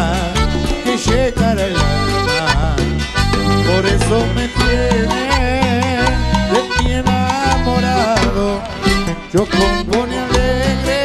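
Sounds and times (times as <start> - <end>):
accordion melody: 0.0 - 11.0
bass notes: 0.0 - 11.0
percussion: 0.0 - 11.0.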